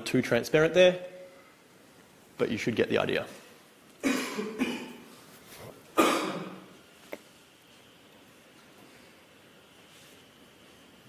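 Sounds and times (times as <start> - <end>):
person coughing: 4.0 - 5.1, 6.0 - 6.7.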